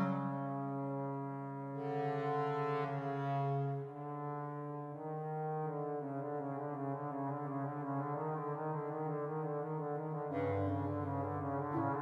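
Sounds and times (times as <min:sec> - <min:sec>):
bass clarinet sustained note: 0:00.0 - 0:04.3, 0:10.3 - 0:12.0.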